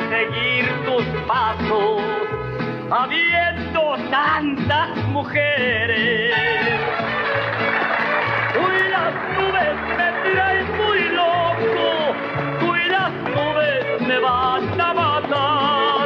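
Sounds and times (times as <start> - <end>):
mariachi band playing: 0.0 - 16.0.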